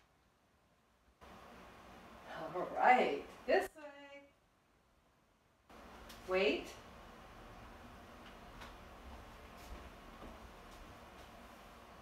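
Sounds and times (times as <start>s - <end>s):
faint footsteps on hardwood floor: 8.0s - 12.0s.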